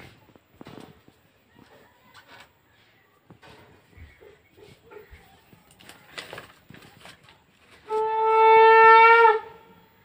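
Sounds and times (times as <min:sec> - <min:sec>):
loud blown horn note: 0:07.9 - 0:09.6.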